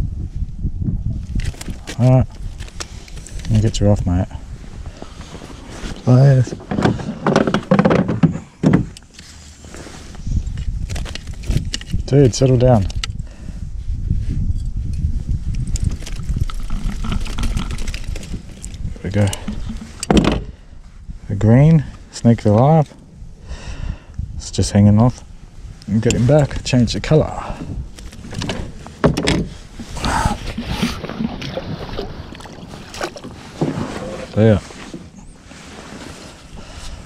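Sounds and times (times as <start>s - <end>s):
wind buffeting microphone: 0.0s - 9.0s, 10.0s - 35.7s
handling clicks and rustles: 1.3s - 3.8s, 5.0s - 13.2s, 14.9s - 20.5s, 27.9s - 37.0s
gear rustling: 15.6s - 20.0s
water splashing: 29.9s - 34.2s.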